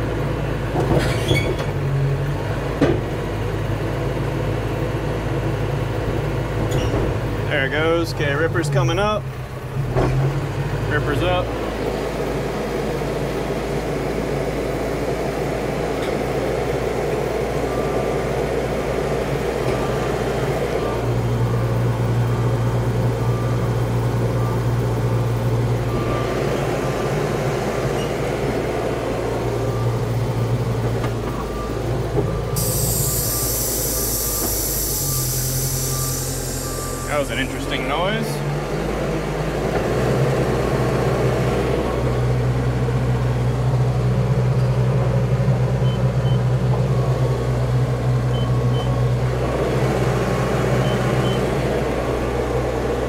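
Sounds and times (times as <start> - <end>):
diesel engine under load: 0.0 - 53.0
high hissing screech: 32.6 - 37.5.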